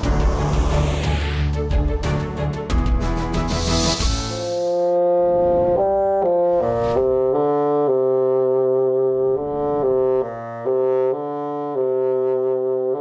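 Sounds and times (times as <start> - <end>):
solo bassoon melody: 4.7 - 13.0.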